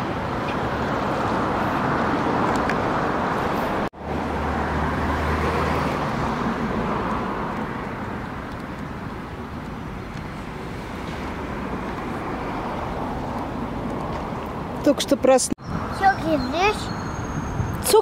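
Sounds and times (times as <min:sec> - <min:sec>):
city street traffic: 0:00.0 - 0:18.0.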